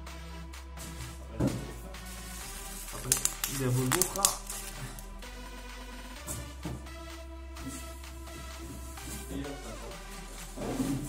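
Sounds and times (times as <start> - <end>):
background music: 0.0 - 11.0
packaging rustling and crinkling: 2.9 - 5.0.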